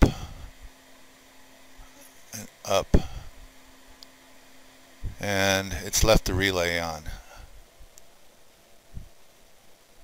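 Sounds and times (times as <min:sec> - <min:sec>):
faint steady hum: 0:00.0 - 0:10.0
low motor noise: 0:00.0 - 0:10.0.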